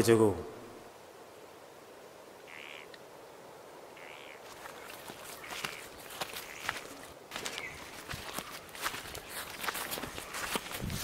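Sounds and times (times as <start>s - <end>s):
footsteps on dry leaves: 4.4s - 11.0s.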